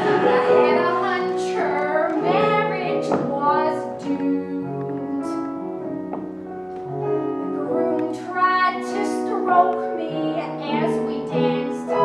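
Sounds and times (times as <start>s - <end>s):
woman singing: 0.0s - 5.8s, 7.6s - 12.0s
piano accompaniment: 0.0s - 12.0s.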